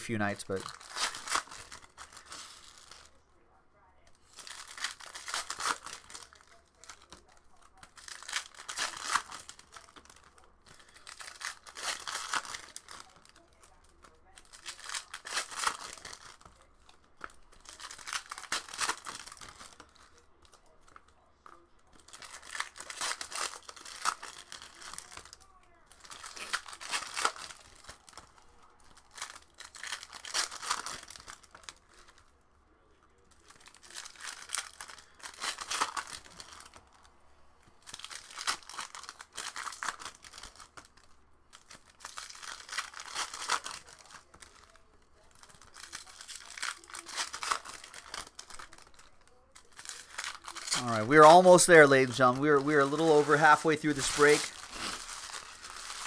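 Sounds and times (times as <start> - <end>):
foil wrappers tearing and crinkling: 0.1 - 3.3, 4.1 - 32.4, 33.1 - 56.0.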